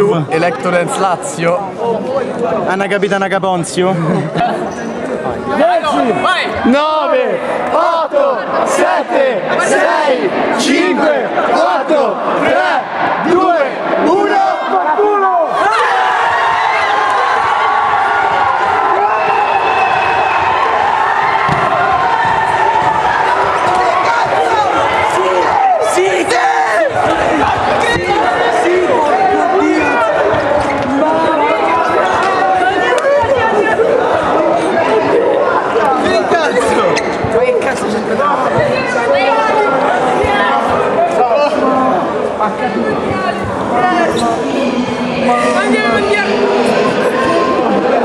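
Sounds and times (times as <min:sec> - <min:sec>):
crowd of young people talking and shouting: 0:00.0 - 0:48.0
crowd cheering and screaming: 0:13.4 - 0:35.6.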